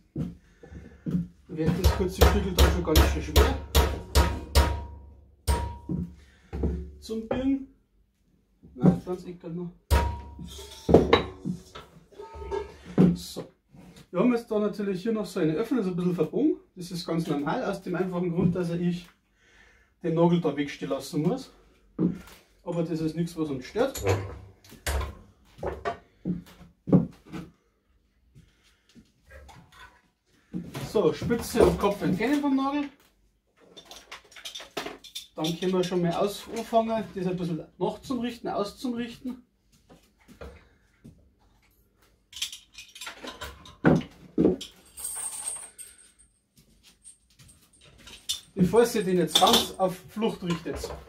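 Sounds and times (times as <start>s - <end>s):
metal knocks at a bench vise: 1.8s - 6.1s
high metallic scrape: 10.4s - 11.0s
metal clinking against vise: 23.8s - 25.2s, 46.9s - 49.8s.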